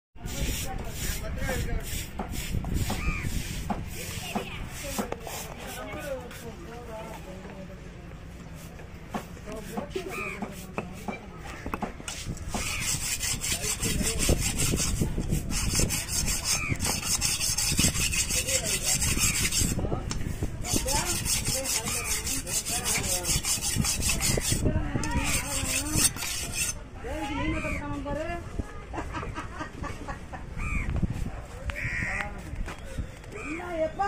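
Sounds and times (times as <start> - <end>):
knife scraping on whetstone: 0.3 - 6.5, 8.6 - 26.8.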